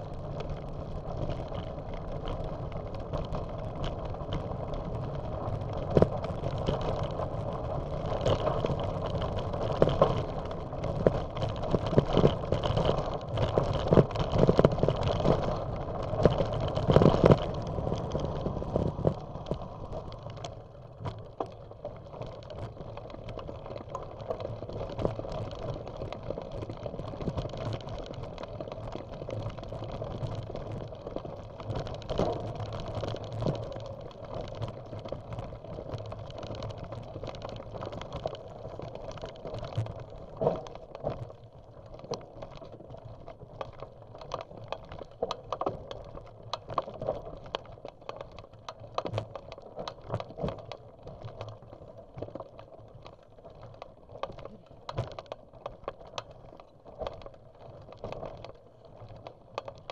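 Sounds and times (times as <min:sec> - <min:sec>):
bicycle tyres crunching on gravel: 0:00.0 - 0:59.9
bike rattling: 0:00.0 - 0:59.9
clicks and knocks over bumps: 0:00.0 - 0:59.9.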